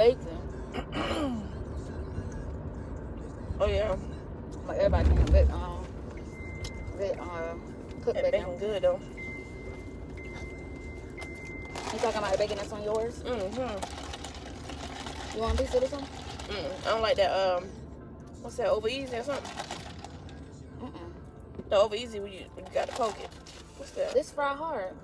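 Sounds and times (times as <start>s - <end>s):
car cabin rumble: 0.0s - 17.6s.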